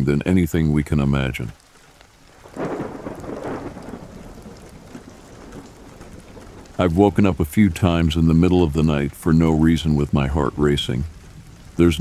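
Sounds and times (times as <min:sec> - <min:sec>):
rain falling: 0:00.0 - 0:12.0
thunder rolling: 0:02.4 - 0:08.8.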